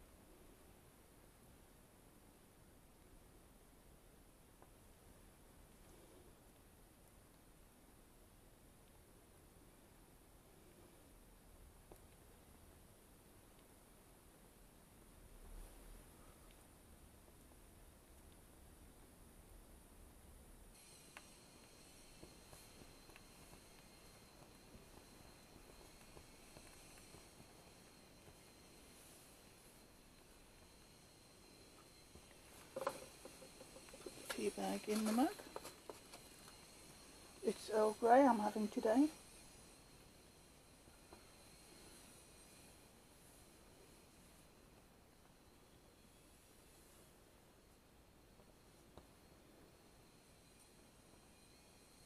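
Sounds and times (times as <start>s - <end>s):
faint room hiss: 0.0s - 52.0s
small ticks: 11.8s - 12.3s, 18.1s - 18.5s, 20.8s - 37.4s.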